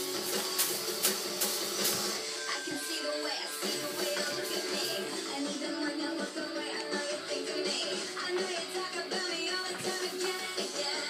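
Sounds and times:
sharp rhythmic hits: 0.0s - 2.3s
music from a television: 0.0s - 11.0s.

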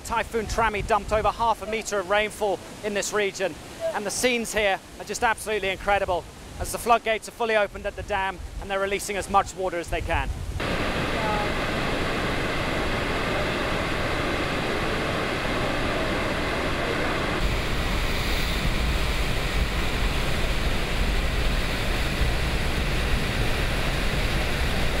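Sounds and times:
floodwater rushing and crashing: 0.0s - 25.0s.

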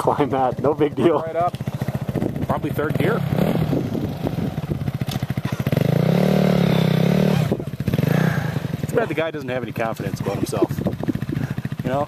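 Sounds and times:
dirt bike engine revving: 0.0s - 12.0s.

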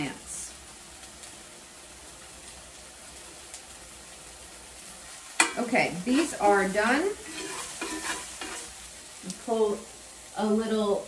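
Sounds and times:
chicken sizzling in a skillet: 0.0s - 11.0s
metal tongs stirring in a pan: 5.0s - 9.3s.

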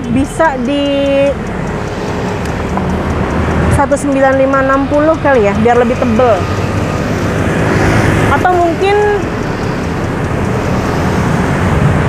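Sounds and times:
roadside traffic with engine hum: 0.0s - 12.0s.

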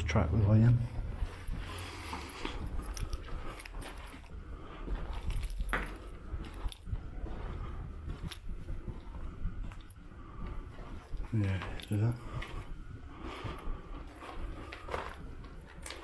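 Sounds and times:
footsteps crunching on rubble: 0.0s - 16.0s
low steady rumble: 0.0s - 16.0s.

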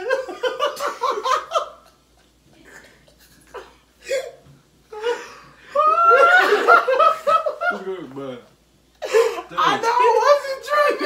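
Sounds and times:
young men laughing: 0.0s - 3.8s, 4.9s - 8.1s, 9.0s - 11.0s.

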